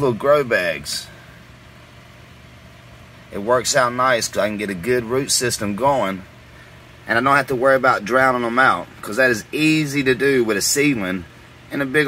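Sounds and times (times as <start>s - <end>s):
faint hiss: 0.0s - 12.0s
low mechanical hum: 0.0s - 12.0s.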